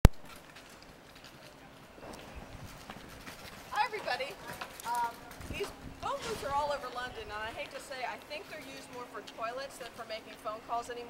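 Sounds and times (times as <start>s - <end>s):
footsteps on pavement: 0.0s - 11.0s.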